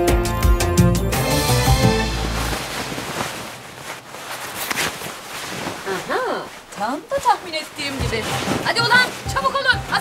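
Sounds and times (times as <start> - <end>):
clothing rustling and swishing: 1.3 - 10.0.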